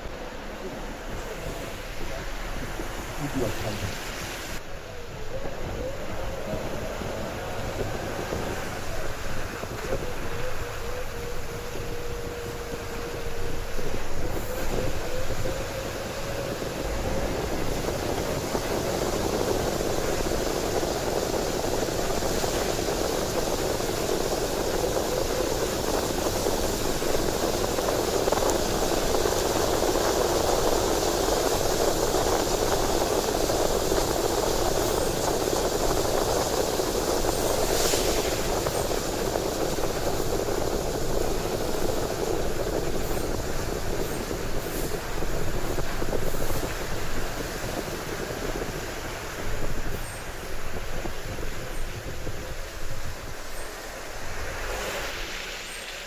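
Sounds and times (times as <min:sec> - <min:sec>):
tyres on wet road: 0:00.0 - 0:56.0.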